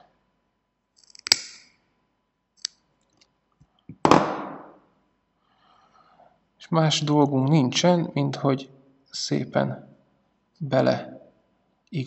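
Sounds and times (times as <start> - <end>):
side cutters snipping wire: 1.0 - 1.6.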